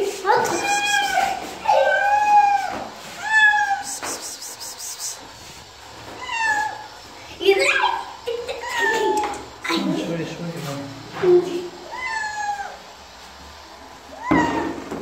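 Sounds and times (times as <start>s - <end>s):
cat meowing: 0.4s - 4.4s, 6.2s - 6.9s, 11.9s - 12.8s, 14.2s - 14.8s.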